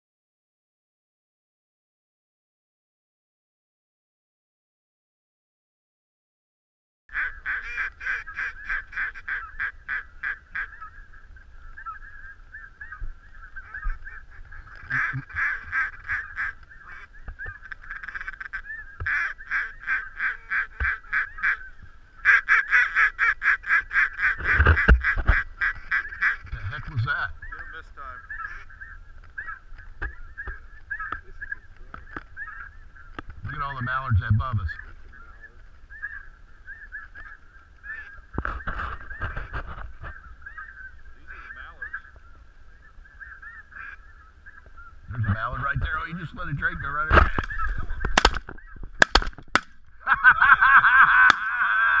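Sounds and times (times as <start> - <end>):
chatter of distant birds: 7.1 - 49.0
geese honking: 7.1 - 49.2.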